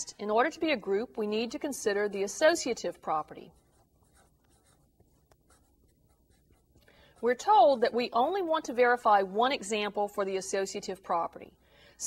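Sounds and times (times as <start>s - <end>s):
marker writing on paper: 3.3s - 7.4s.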